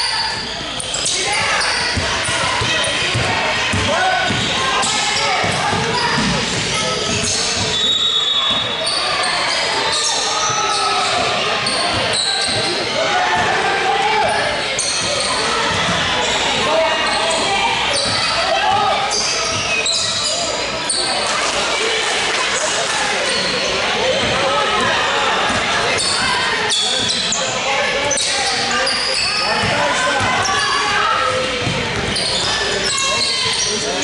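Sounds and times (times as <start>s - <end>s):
voices calling out: 0.0s - 34.0s.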